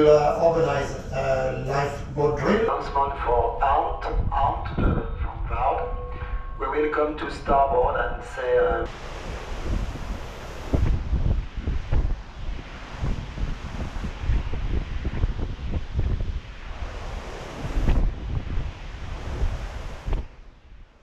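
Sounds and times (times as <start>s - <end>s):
rushing wind and sea: 0.0s - 21.0s
wind buffeting microphone: 0.0s - 21.0s.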